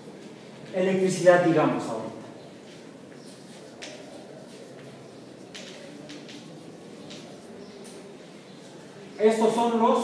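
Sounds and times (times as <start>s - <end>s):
chalk scratching on chalkboard: 2.7s - 8.0s.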